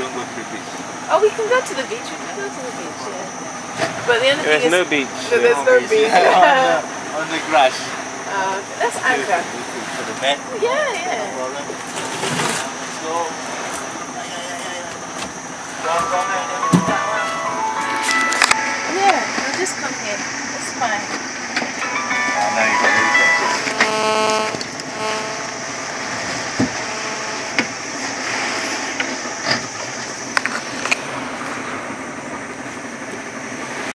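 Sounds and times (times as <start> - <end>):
people calling and talking: 0.0 - 25.5.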